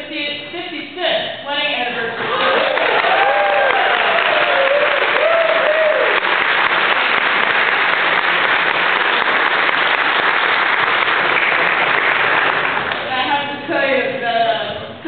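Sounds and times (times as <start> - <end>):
congregation applauding: 2.3 - 13.1.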